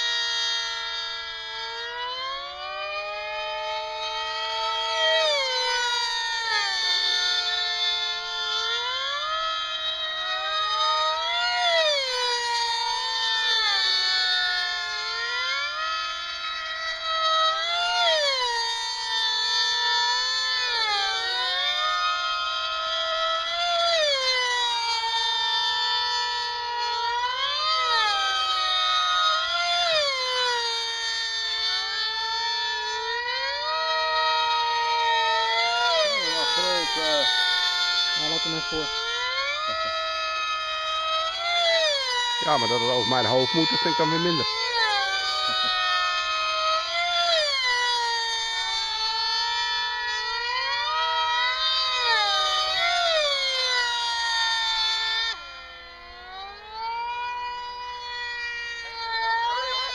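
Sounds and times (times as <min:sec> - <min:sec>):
model airplane engines whining: 0:00.0 - 0:59.9.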